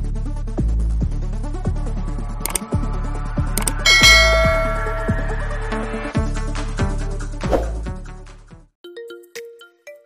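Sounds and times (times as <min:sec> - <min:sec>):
electronic background music: 0:01.4 - 0:05.7
mouse-click effects: 0:02.4 - 0:02.6, 0:03.6 - 0:03.8
bright bell chime: 0:03.6 - 0:05.8.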